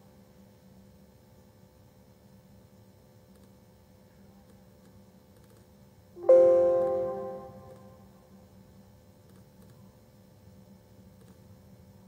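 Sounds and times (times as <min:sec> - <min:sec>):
computer electronic chime: 0:06.2 - 0:08.0
low steady hum: 0:06.2 - 0:08.2.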